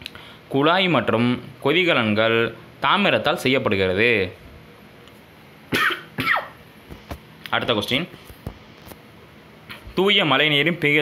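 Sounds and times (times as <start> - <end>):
person coughing: 5.7 - 6.6.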